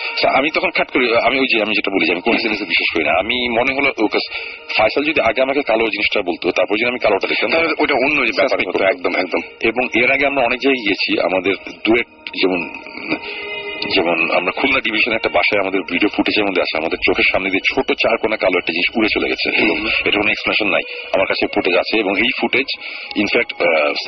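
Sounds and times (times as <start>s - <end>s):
person talking: 0.1s - 24.0s.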